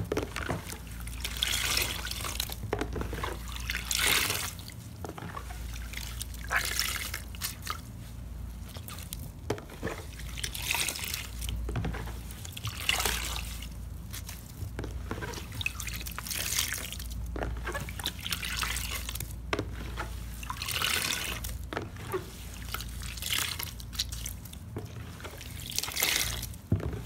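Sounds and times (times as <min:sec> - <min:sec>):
wet squelching of sponges: 0:00.0 - 0:27.0.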